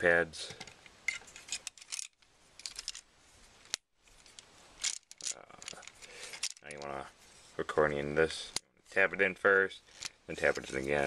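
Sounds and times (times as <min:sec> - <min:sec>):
plastic toy parts clicking: 0:01.5 - 0:03.0, 0:03.7 - 0:06.9
light plastic rattling: 0:04.2 - 0:07.0.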